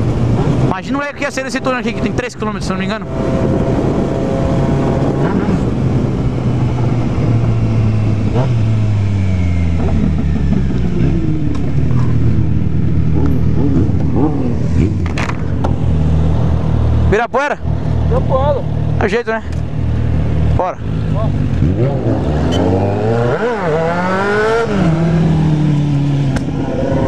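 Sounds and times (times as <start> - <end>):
wind rushing over microphone: 1.6 - 17.1, 21.3 - 27.0.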